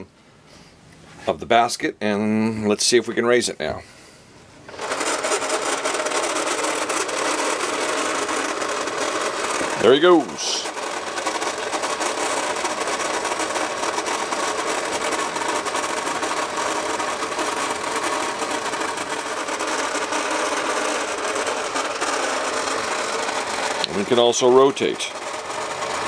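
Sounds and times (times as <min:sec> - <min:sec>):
toy electric motor and gears: 0:04.7 - 0:26.0.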